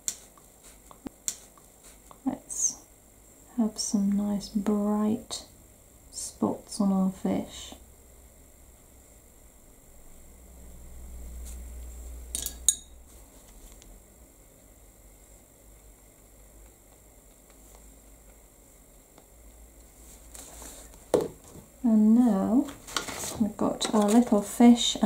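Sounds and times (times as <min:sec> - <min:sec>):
paintbrush dabbing paint on card: 0:00.0 - 0:02.3.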